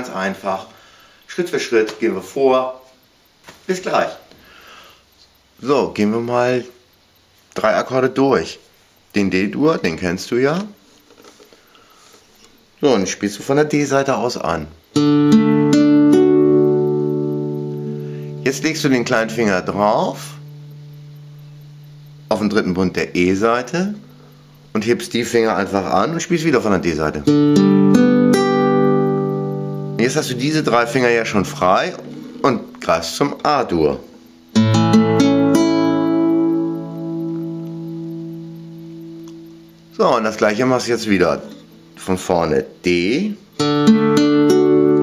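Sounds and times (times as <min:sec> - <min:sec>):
classical guitar chord picked: 0:14.9 - 0:42.0, 0:43.6 - 0:45.0.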